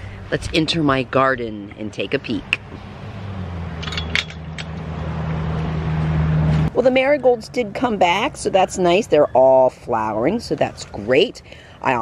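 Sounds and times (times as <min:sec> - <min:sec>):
low motor hum: 0:00.0 - 0:07.9
gate latch clinking: 0:03.8 - 0:04.8.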